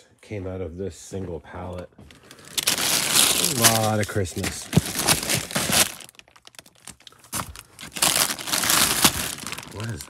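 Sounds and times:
plastic bags crinkling: 2.1 - 10.0.

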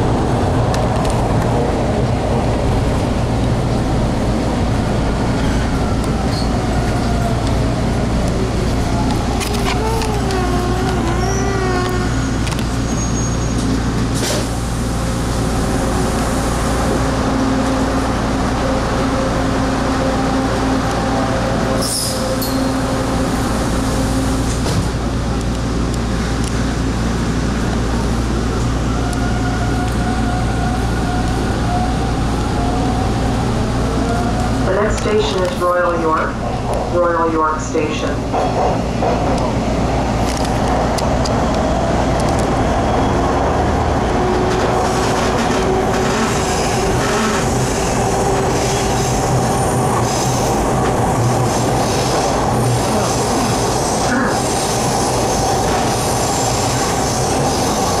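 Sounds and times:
subway car hum and running noise: 0.0 - 58.0.

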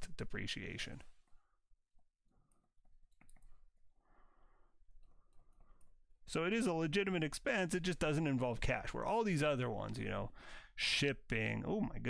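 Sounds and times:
quiet breaths: 1.0 - 6.2, 10.3 - 10.8.

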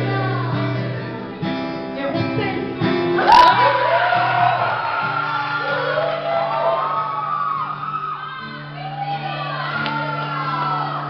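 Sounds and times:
guitar accompaniment: 0.0 - 11.0.

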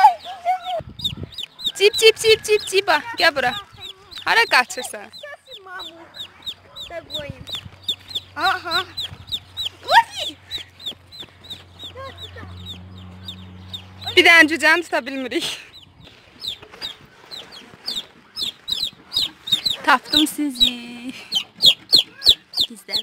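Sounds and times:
chicks peeping: 0.0 - 23.0.

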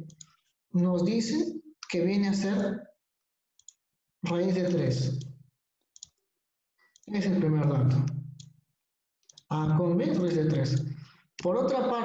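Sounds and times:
computer mouse clicking: 0.0 - 0.4, 3.6 - 5.3, 6.0 - 6.2, 6.9 - 8.5, 9.2 - 9.5.

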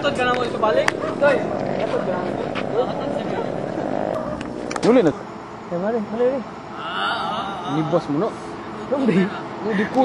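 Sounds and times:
people talking: 0.0 - 10.0
vehicle engine drone: 0.0 - 10.0.

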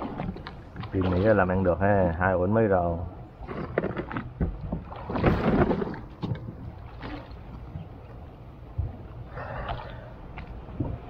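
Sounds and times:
water splashing against boat hull: 0.0 - 2.2, 3.4 - 11.0
wind on microphone: 10.6 - 11.0.

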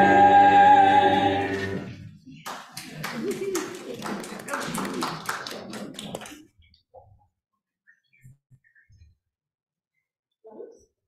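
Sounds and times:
people talking: 2.3 - 6.4.

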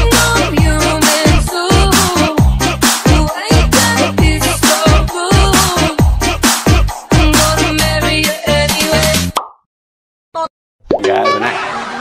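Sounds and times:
electronic dance music: 0.0 - 7.8.

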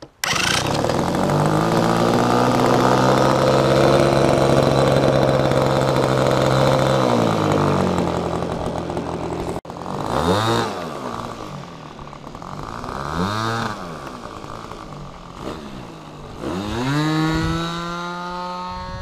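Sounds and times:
model airplane engine buzzing: 0.2 - 19.0.

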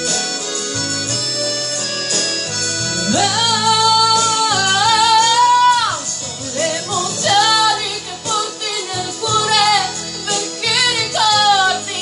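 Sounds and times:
band backing track: 0.0 - 12.0
woman singing with vibrato: 3.0 - 12.0.

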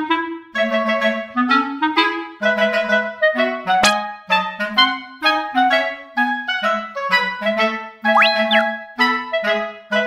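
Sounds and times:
cheerful woodwind background music: 1.2 - 10.0
comic sliding pitch effect: 8.1 - 8.7.

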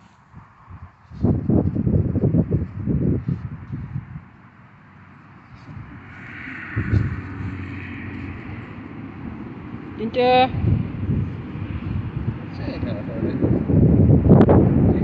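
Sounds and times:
wind rumble on microphone: 0.0 - 15.0
high-pitched whine: 5.4 - 10.6.

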